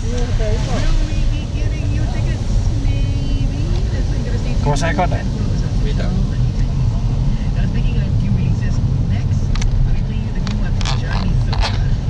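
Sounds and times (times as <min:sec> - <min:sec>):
car interior rumble: 0:00.0 - 0:12.0.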